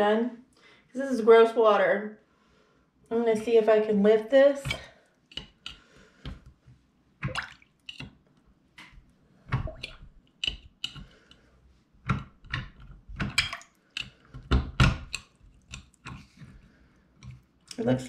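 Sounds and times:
small wet splashes: 7.2s - 8.1s, 9.5s - 10.2s.

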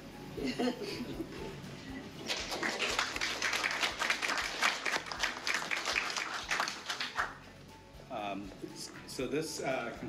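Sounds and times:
people applauding: 2.2s - 7.4s.

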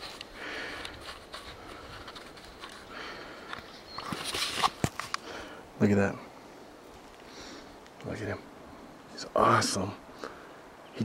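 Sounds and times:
man breathing hard: 0.3s - 3.7s, 5.2s - 5.8s.

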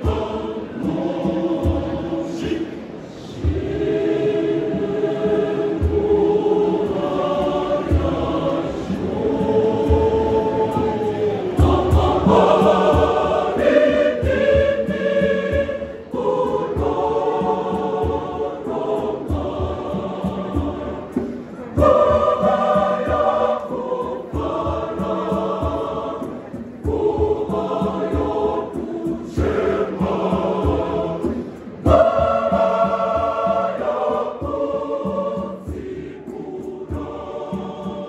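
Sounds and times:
choir singing in harmony: 0.0s - 38.0s.

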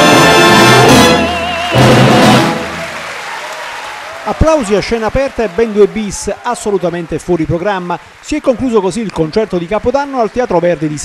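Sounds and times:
operatic tenor singing: 0.0s - 2.7s
symphony orchestra playing: 0.0s - 3.0s
audience applause: 0.0s - 11.0s.

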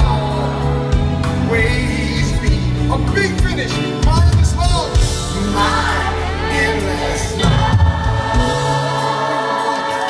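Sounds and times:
live band playing slow ballad: 0.0s - 10.0s
sustained singing: 5.2s - 10.0s.

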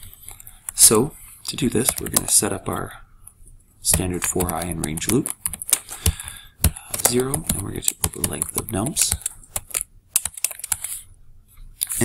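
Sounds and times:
typing on computer keyboard: 1.8s - 2.3s, 3.9s - 11.0s.

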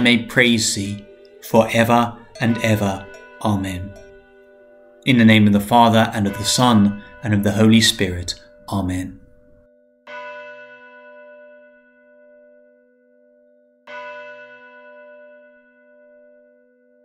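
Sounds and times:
church bell ringing: 0.0s - 17.0s.

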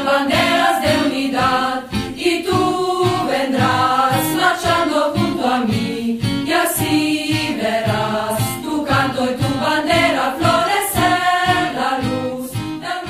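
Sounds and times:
group of voices singing: 0.0s - 13.0s.

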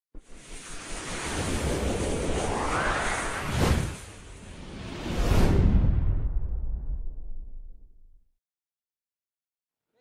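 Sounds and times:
whoosh with low rumble: 0.2s - 8.1s.

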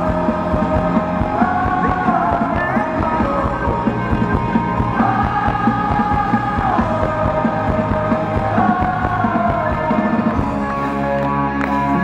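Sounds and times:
steady drum beat: 0.0s - 10.6s.

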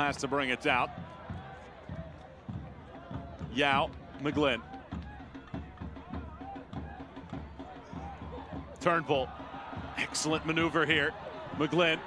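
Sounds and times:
stadium crowd: 0.0s - 12.0s
steady drum beat: 0.0s - 12.0s.

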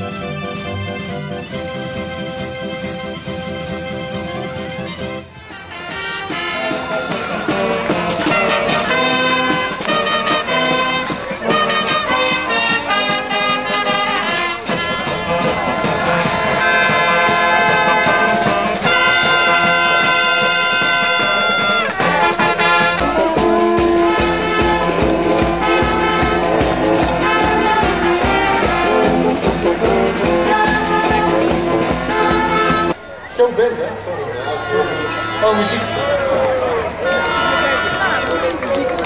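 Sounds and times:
brass band playing: 0.0s - 33.0s, 34.2s - 38.6s.

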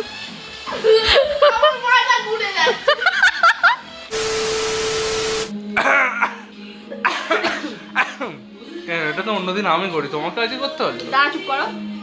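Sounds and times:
steady tone: 4.1s - 5.5s
white-noise static hiss: 4.1s - 5.5s.

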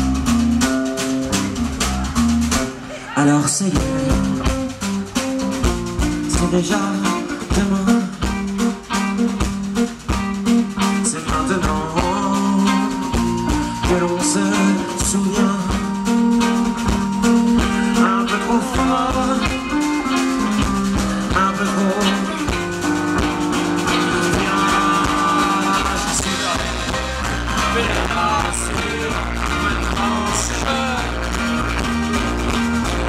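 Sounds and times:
folk-rock band playing: 0.0s - 33.0s
accordion: 11.8s - 33.0s.

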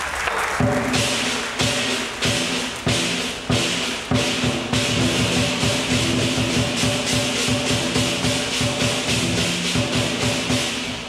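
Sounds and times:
clashing cymbals: 0.0s - 11.0s
drum beaten in fast rhythm: 0.3s - 11.0s.

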